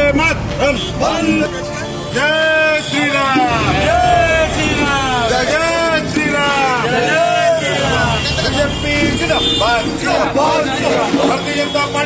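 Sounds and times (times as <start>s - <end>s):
people speaking: 0.0s - 12.0s.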